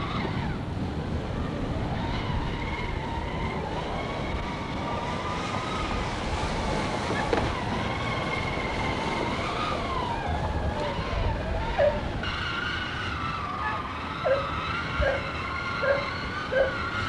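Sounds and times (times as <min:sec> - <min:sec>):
toy electric motor whine: 0:00.0 - 0:17.0.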